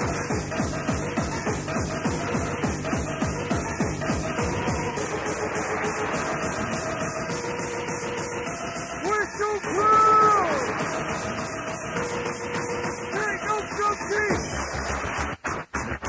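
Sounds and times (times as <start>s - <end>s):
rapid bass drum: 0.0s - 8.5s, 9.1s - 16.0s
electronic rave dance music: 0.0s - 16.0s.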